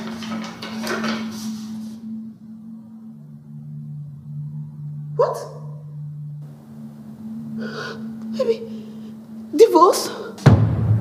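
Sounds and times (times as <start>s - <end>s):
low background music: 0.0s - 11.0s.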